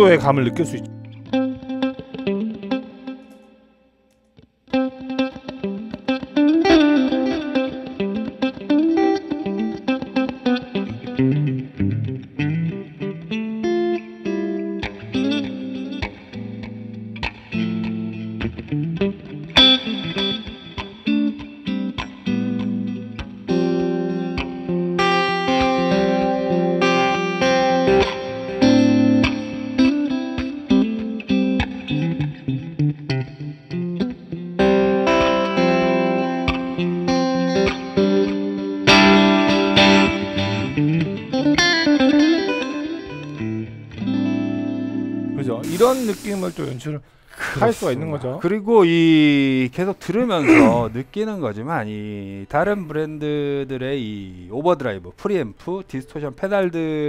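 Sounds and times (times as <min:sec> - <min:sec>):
electric guitar notes and chords: 0:00.0 - 0:03.8, 0:04.4 - 0:46.1.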